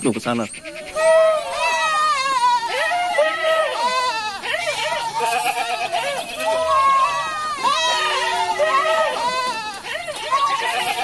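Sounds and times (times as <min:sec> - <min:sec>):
goats bleating: 0:00.4 - 0:11.0.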